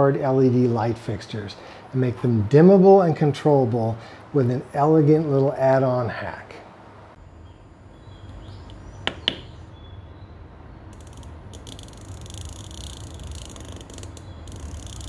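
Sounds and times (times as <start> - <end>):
high-pitched buzz with ticking: 10.9 - 15.0.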